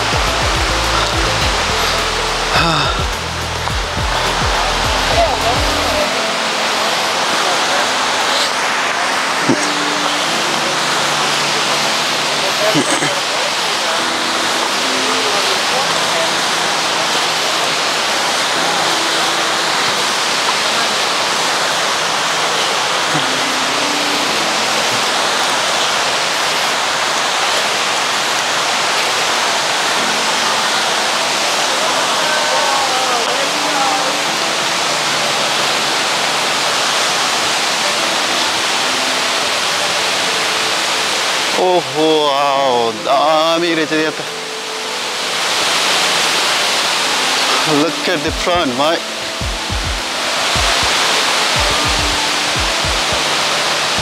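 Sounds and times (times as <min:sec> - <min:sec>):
wavering voice or tune: 0:00.0 - 0:21.0, 0:23.0 - 0:25.6, 0:47.2 - 0:54.0
faint voices: 0:00.0 - 0:54.0
waterfall rushing: 0:00.0 - 0:54.0.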